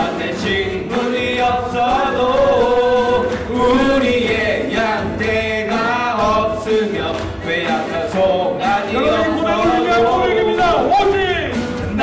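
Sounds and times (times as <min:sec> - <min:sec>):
group singing praise song: 0:00.0 - 0:12.0
instrumental backing: 0:00.0 - 0:12.0.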